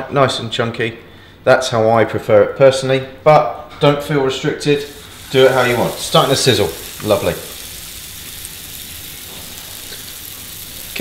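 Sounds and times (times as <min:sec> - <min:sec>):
beef patty sizzling in pan: 0:04.8 - 0:11.0.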